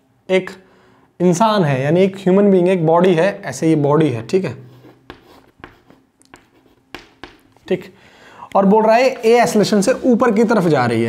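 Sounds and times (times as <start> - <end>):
chalk scratching on chalkboard: 4.7 - 7.7.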